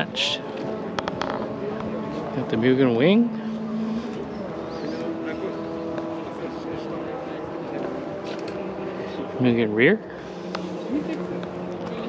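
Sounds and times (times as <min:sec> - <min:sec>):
car engine running: 0:00.0 - 0:12.0
people talking faintly: 0:00.0 - 0:12.0.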